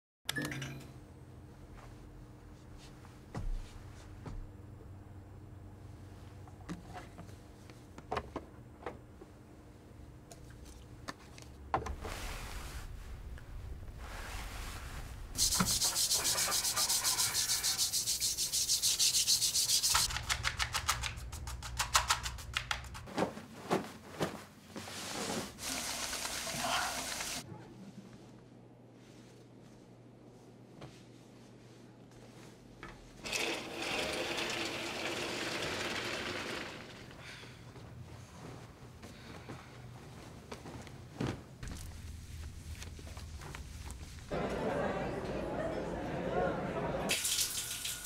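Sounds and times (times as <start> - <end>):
rapid rubbing strokes: 14.2 - 20.1.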